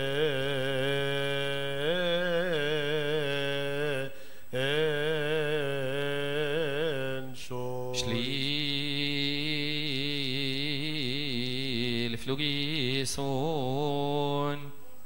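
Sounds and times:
lower voice chanting: 0.0 - 15.0
man chanting a liturgical melody: 0.0 - 15.0.

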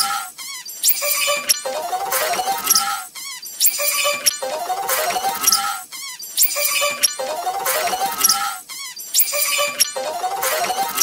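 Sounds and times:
sped-up squeaky scream: 0.0 - 1.6, 5.1 - 7.2, 7.9 - 11.0
sped-up soundtrack: 1.6 - 2.8, 4.4 - 5.7, 7.2 - 8.4, 10.0 - 11.0.

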